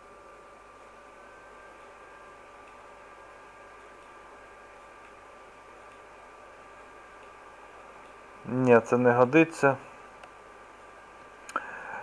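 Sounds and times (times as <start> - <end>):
electrical whine: 0.0 - 12.0.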